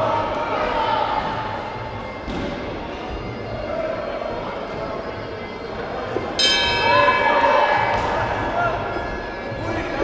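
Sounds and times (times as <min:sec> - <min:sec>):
hall noise and voices: 0:00.0 - 0:10.0
ring bell ringing: 0:06.4 - 0:07.6.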